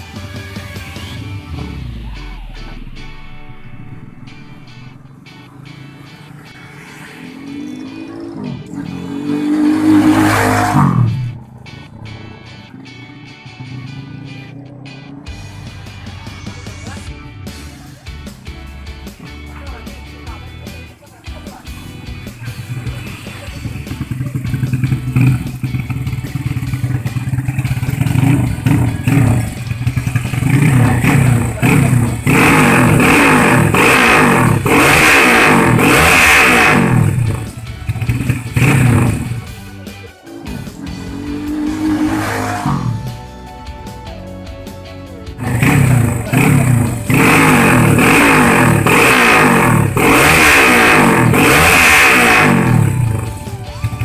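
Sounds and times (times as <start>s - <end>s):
motorcycle engine revving: 0.0s - 20.9s, 21.6s - 43.4s, 45.4s - 54.0s.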